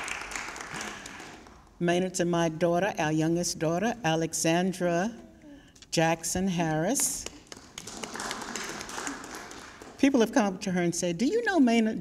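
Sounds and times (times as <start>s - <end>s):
small audience applauding: 0.0s - 1.8s, 7.2s - 10.0s.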